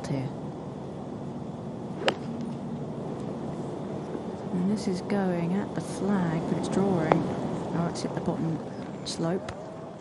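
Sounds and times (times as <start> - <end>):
golf club striking ball: 2.0 - 2.6.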